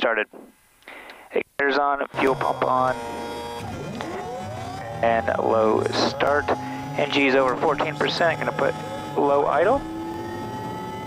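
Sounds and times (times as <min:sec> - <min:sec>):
low steady hum: 0:00.1 - 0:11.0
turboprop starter whine rising: 0:02.1 - 0:11.0.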